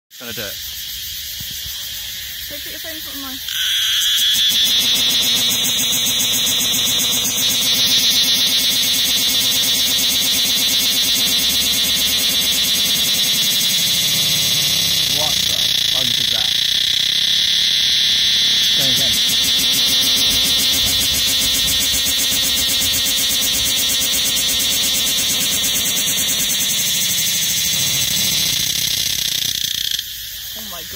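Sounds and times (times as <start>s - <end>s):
cicada buzzing: 0.2s - 30.9s.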